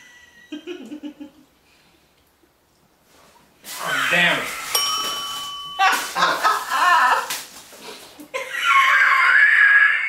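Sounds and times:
woman laughing high-pitched: 5.8s - 7.4s, 8.2s - 9.9s.

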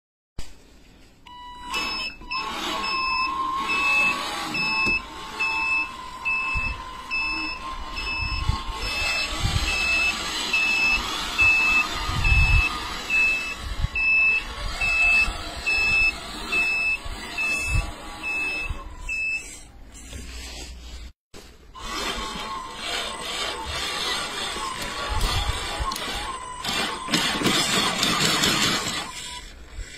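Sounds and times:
reverse warning beeper: 1.3s - 19.7s
electric motor whine: 1.7s - 19.6s, 21.8s - 29.4s
wheels rolling over rubble: 21.8s - 29.6s.

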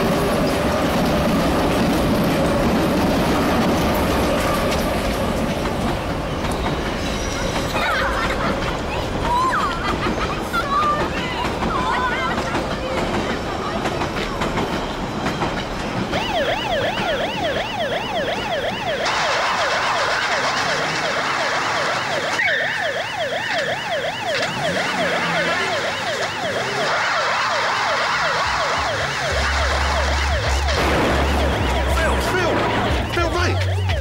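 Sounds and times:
police siren yelping: 16.1s - 34.0s.

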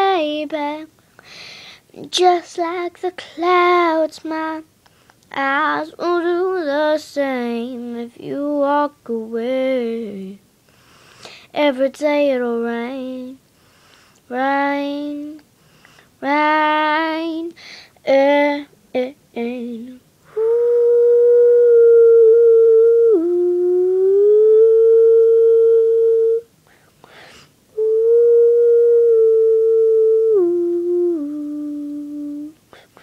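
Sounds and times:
breath: 1.2s - 1.9s, 10.7s - 11.5s, 13.6s - 14.2s, 15.6s - 16.1s, 17.6s - 18.0s, 26.7s - 27.6s
woman singing: 16.2s - 26.5s, 27.8s - 33.0s
woman humming: 19.6s - 26.5s, 27.7s - 33.0s.

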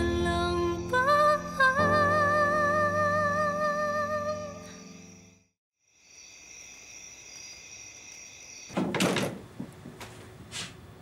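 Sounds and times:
night insects chirring: 4.4s - 9.6s
wooden door opening: 8.7s - 10.3s.

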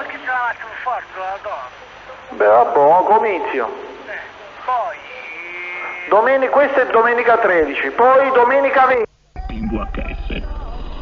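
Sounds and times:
radio channel hiss: 0.0s - 11.0s.

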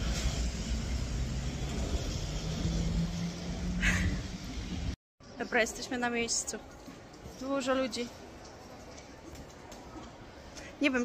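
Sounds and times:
street traffic passing: 0.0s - 11.0s.

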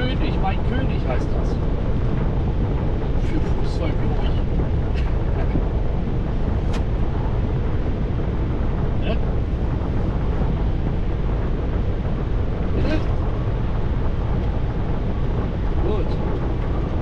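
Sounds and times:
road and wind noise in vehicle: 0.0s - 17.0s.

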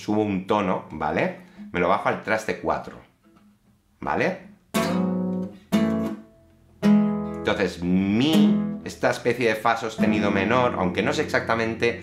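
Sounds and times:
classical guitar chords strummed: 4.4s - 12.0s.

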